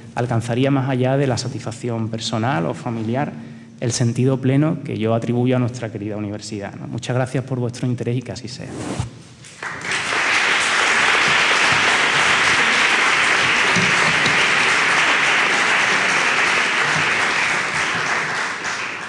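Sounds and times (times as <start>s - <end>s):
audience applauding: 9.6s - 19.0s.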